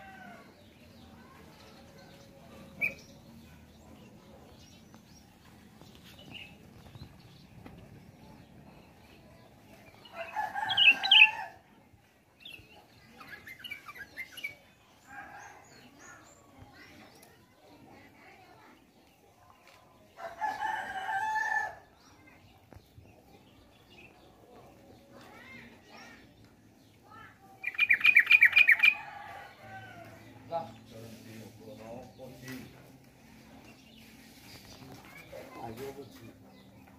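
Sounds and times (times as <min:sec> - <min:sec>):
bulbuls singing chattering notes: 0:00.0 - 0:11.6, 0:12.4 - 0:17.4, 0:18.8 - 0:36.9
bulbul singing: 0:02.6 - 0:05.2, 0:27.6 - 0:29.1.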